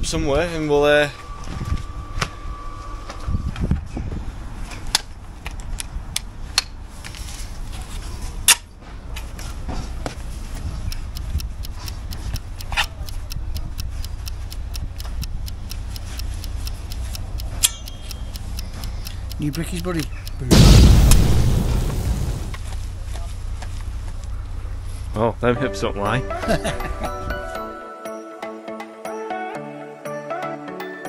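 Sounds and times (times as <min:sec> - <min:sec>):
steady low rumble: 0:00.0 - 0:06.4, 0:09.9 - 0:26.2.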